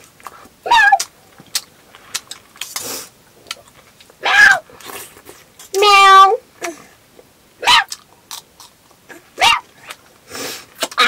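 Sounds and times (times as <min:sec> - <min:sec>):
dog barking: 0:09.4 - 0:09.7.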